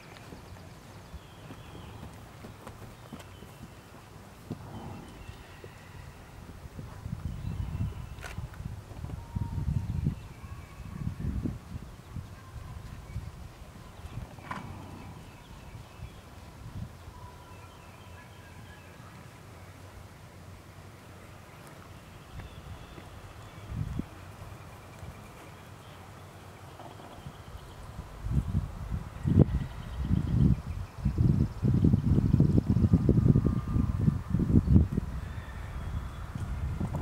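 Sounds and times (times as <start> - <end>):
horse hoofbeats on sand: 0.0 - 5.8.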